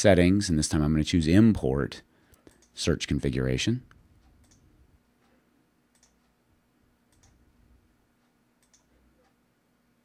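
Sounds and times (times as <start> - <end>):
low steady hum: 0.0 - 10.0
computer mouse clicks: 2.3 - 2.8, 4.3 - 4.7, 5.9 - 6.4, 7.1 - 7.4, 8.6 - 9.4.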